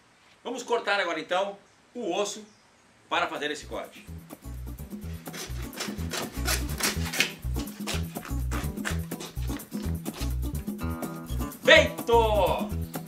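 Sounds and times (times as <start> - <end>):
background music with bass beat: 4.0 - 13.0
hand saw rasping through bone: 5.0 - 10.4.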